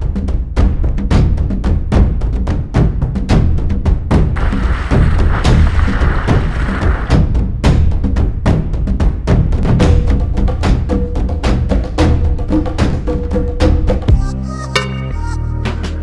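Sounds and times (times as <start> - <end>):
fast percussive drum beat: 0.1 - 14.2.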